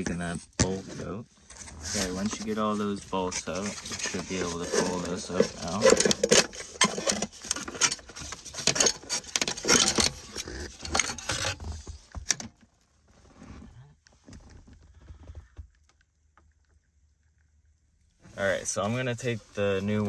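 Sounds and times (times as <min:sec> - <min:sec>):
faint handling sounds: 0:00.0 - 0:16.7, 0:17.4 - 0:20.0
metal and plastic rattling: 0:01.5 - 0:12.6.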